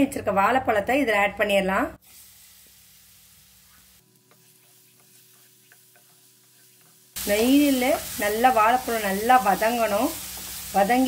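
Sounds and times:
banana frying in pan: 0:02.0 - 0:11.0.

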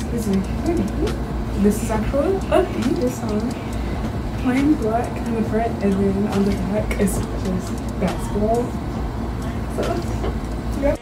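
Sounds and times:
woman speaking: 0:00.0 - 0:08.8, 0:09.4 - 0:11.0.

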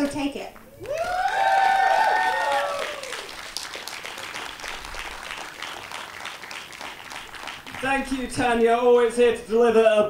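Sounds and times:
crowd applauding: 0:00.6 - 0:08.3.

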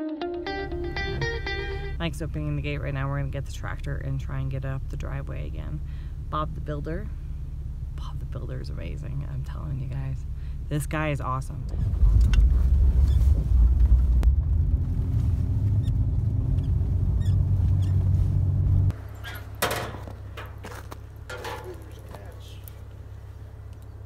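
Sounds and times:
engine and road rumble: 0:00.4 - 0:24.0
steady low hum: 0:00.6 - 0:24.0.

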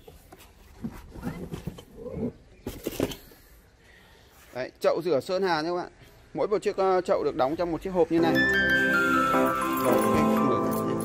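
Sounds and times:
cardboard and foam rustling: 0:00.0 - 0:02.0.

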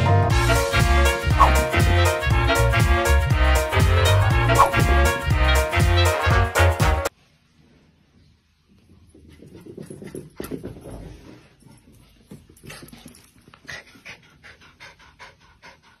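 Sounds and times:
dog panting: 0:12.6 - 0:16.0.

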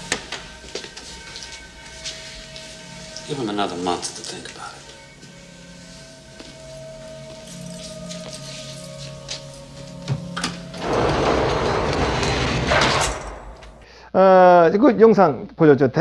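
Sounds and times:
soft film score notes: 0:00.0 - 0:11.4
heavy cell door scraping shut: 0:10.2 - 0:13.8.

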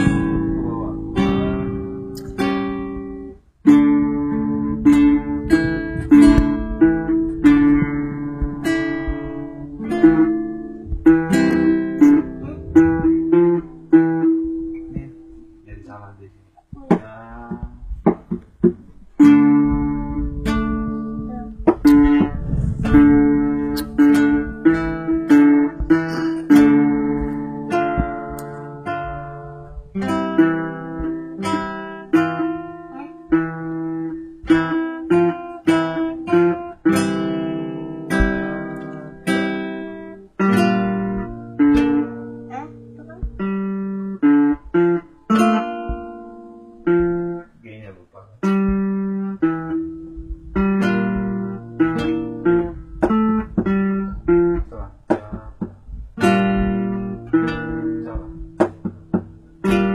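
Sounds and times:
acoustic guitar music: 0:00.0 - 0:59.9.

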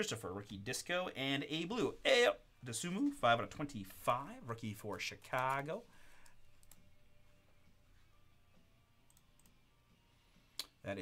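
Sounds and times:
man speaking: 0:00.0 - 0:05.9.

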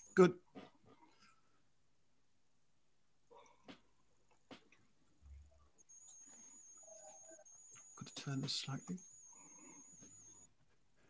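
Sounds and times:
faint high-pitched whine: 0:05.0 - 0:11.0.

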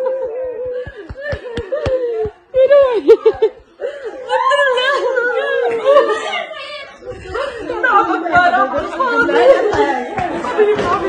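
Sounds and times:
people talking loudly at once: 0:01.6 - 0:11.0.

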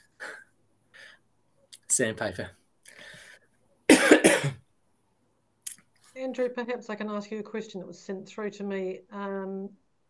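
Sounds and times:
man coughing: 0:03.9 - 0:04.6.

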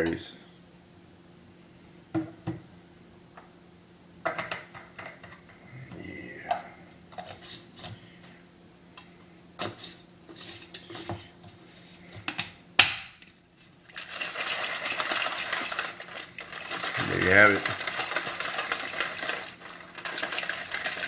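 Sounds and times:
shaker bottle shaken: 0:13.9 - 0:21.0.

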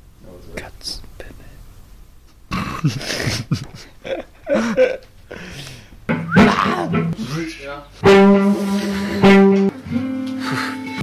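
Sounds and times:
loud steady musical note: 0:08.0 - 0:11.0.

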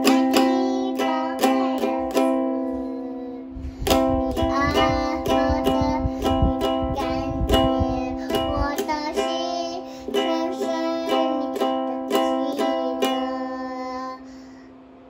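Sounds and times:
ukulele strumming: 0:00.0 - 0:14.0
child singing: 0:00.0 - 0:14.3.

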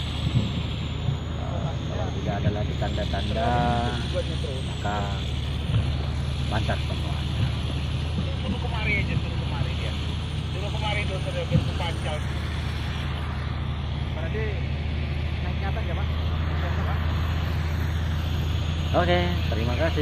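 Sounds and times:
heavy engine droning: 0:00.0 - 0:20.0.

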